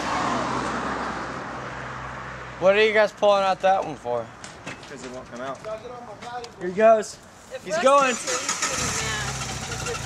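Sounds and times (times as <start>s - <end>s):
car engine starting and running: 8.0s - 10.0s.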